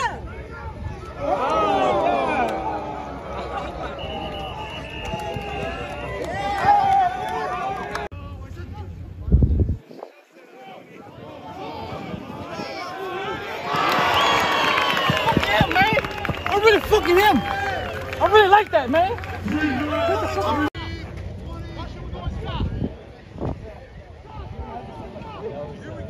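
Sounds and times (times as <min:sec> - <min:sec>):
voices shouting: 0:00.0 - 0:08.1
outdoor crowd noise: 0:00.0 - 0:26.0.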